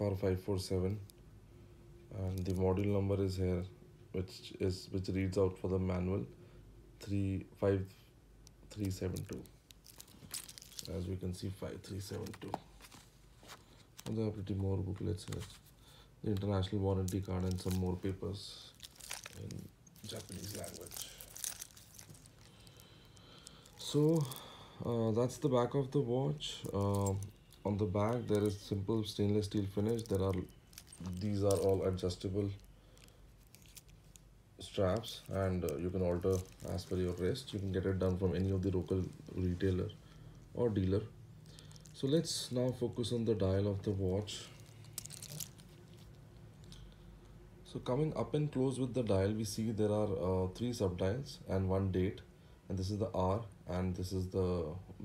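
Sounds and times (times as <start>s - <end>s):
soft rustling: 2.1s - 3.4s, 7.0s - 46.9s
plastic film crinkling: 2.2s - 3.0s, 8.4s - 47.0s.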